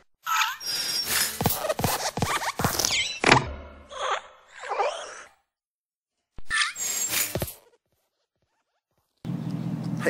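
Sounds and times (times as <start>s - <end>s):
squeaky creak: 0.2s - 1.7s.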